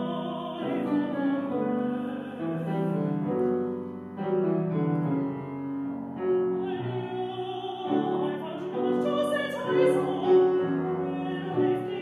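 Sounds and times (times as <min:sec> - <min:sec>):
grand piano playing slow chords: 0:00.0 - 0:12.0.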